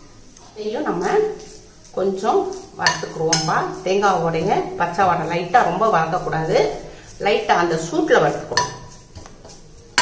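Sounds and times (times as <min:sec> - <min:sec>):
spoon scraping coconut in pan: 0:00.7 - 0:10.0
spoon clinking on pan: 0:08.5 - 0:09.0.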